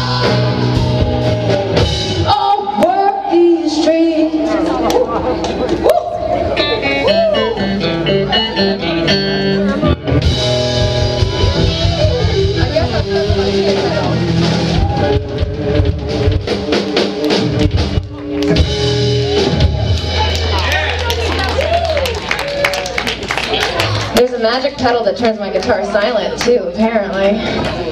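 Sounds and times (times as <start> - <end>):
live rock band playing: 0.0 - 27.8.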